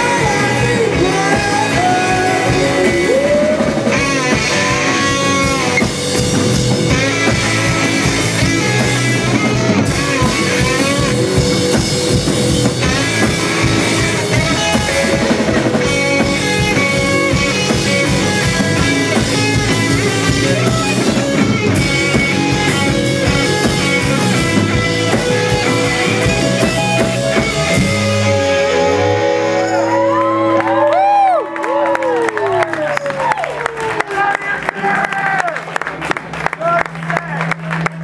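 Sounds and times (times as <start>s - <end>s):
fast drum-kit beat: 0.0s - 28.3s
distorted electric guitar: 0.0s - 30.9s.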